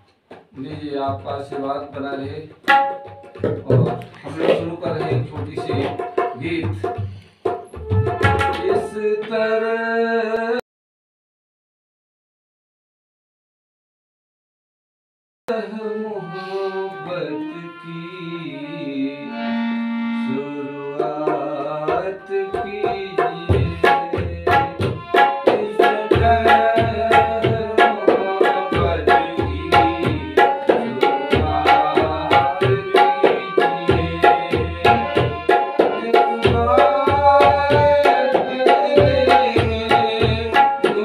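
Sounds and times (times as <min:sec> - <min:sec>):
tabla rhythm: 0:00.3 - 0:09.5, 0:20.9 - 0:41.0
harmonium: 0:01.1 - 0:09.8, 0:15.5 - 0:41.0
tabla strokes: 0:02.6 - 0:08.8
person singing: 0:15.5 - 0:41.0
harmonium sustained notes: 0:15.7 - 0:21.2.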